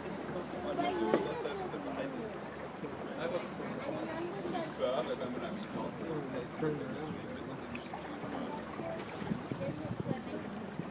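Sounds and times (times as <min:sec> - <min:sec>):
water washing against hull: 0:05.9 - 0:10.9
wind on microphone: 0:08.8 - 0:10.9.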